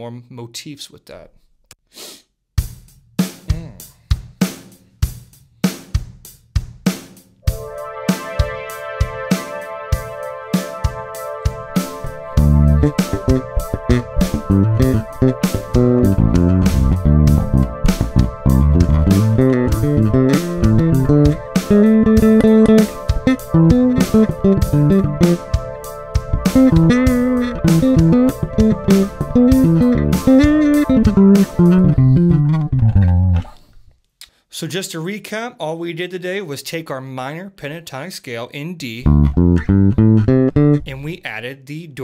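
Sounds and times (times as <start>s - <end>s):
programmed drums: 2.6s - 33.5s, 39.1s - 41.3s
sustained chords: 7.4s - 33.5s, 39.1s - 40.9s
electric bass guitar melody: 11.6s - 33.6s, 39.0s - 41.1s.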